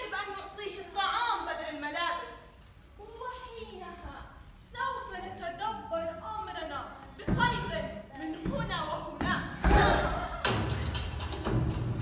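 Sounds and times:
drum-led music: 0:09.8 - 0:12.0.

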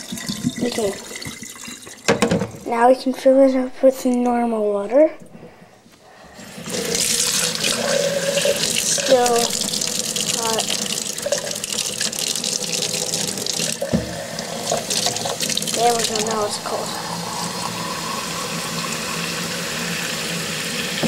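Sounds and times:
tap water running into sink: 0:00.0 - 0:02.9, 0:06.5 - 0:21.0.

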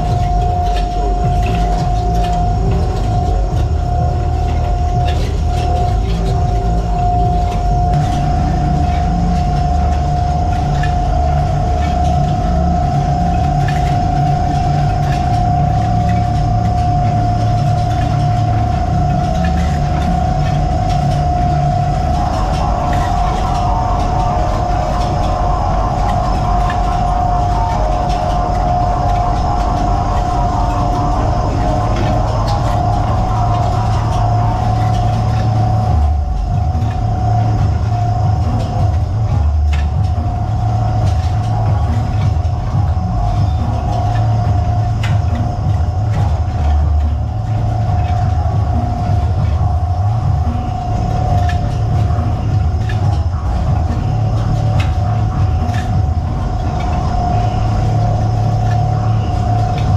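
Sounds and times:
constant high whine: 0:00.0 - 0:59.9
low engine rumble: 0:00.0 - 0:59.9
rough machinery rattling: 0:00.0 - 0:59.9.

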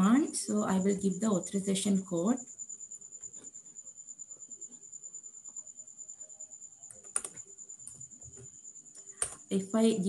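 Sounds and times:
faint high-pitched whine: 0:00.0 - 0:10.0
keyboard key presses: 0:06.9 - 0:07.4.

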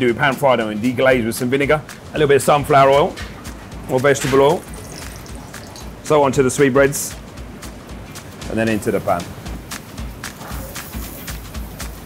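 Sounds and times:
background music with low beat: 0:00.0 - 0:12.0
meat crackling in hot oil: 0:04.1 - 0:06.1.

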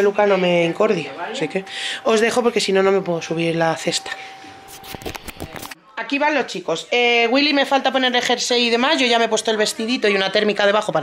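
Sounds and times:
faint steady tone: 0:00.0 - 0:05.7.

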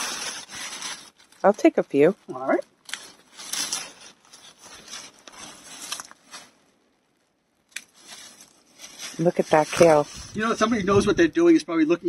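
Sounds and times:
leaves rustling: 0:00.0 - 0:06.7, 0:07.7 - 0:11.2
pruning shears snipping stems: 0:07.7 - 0:08.0.

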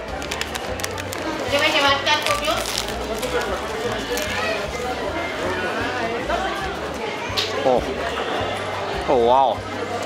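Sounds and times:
background music: 0:00.0 - 0:10.0
market chatter: 0:00.0 - 0:10.0
crunchy food being bitten: 0:02.2 - 0:04.4.

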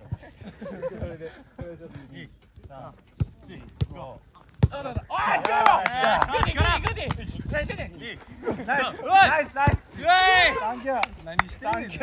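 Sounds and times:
football being kicked: 0:02.6 - 0:05.1
players shouting: 0:04.7 - 0:06.8, 0:08.4 - 0:12.0.

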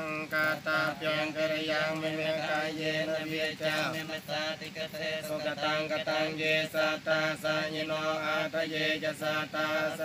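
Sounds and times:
monks chanting in monotone: 0:00.0 - 0:10.0.

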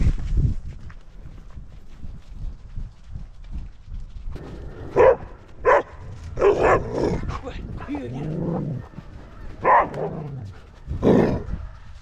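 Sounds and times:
dog barking: 0:04.9 - 0:07.3, 0:08.6 - 0:10.3.

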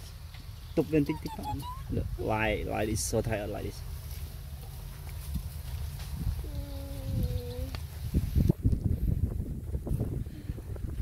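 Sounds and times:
wind rumble: 0:05.2 - 0:11.0.

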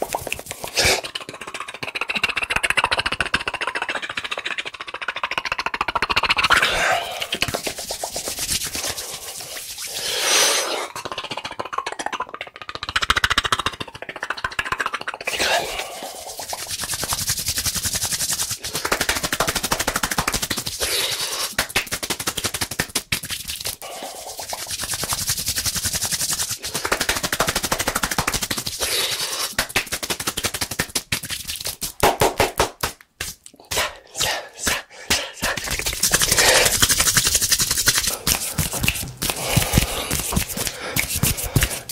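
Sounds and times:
hand claps and palm pats: 0:00.0 - 0:04.4, 0:07.3 - 0:09.8, 0:16.4 - 0:41.9.

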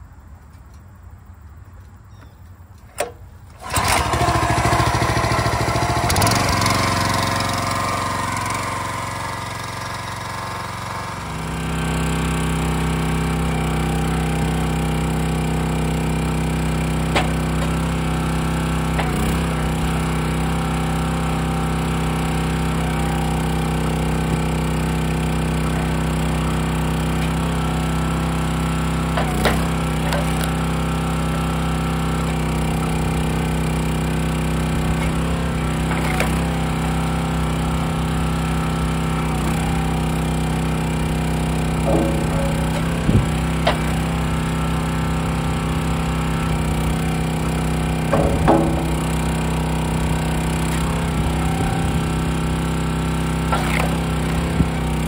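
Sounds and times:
recoil starter pull: 0:02.8 - 0:55.0
small engine running: 0:03.4 - 0:55.0
sharp knocks: 0:48.1 - 0:49.3.

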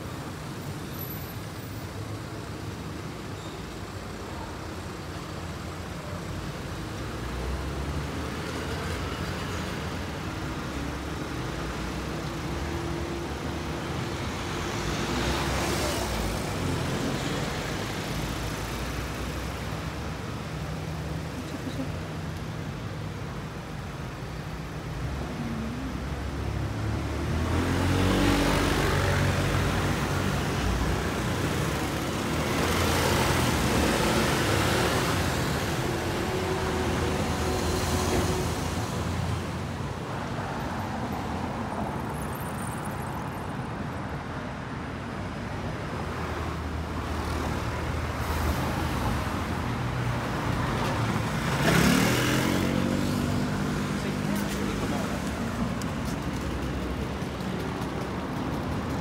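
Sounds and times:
vehicles passing: 0:00.0 - 0:59.0.

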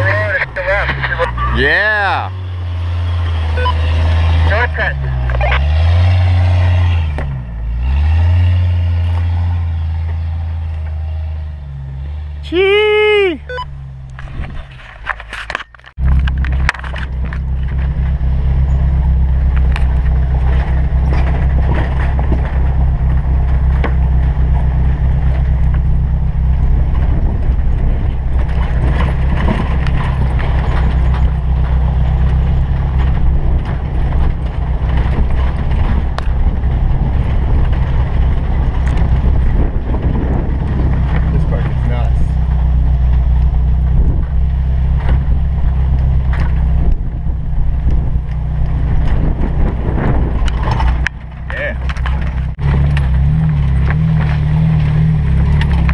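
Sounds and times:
off-road vehicle engine: 0:00.0 - 0:55.9
tyre and road rumble: 0:00.0 - 0:55.9.

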